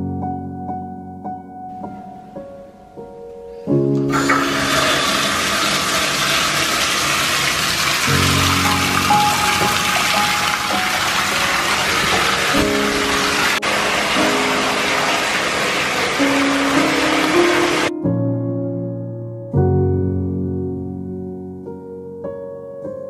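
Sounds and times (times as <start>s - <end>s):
soft piano music: 0.0s - 23.0s
tap water running into a bathtub: 4.0s - 17.9s.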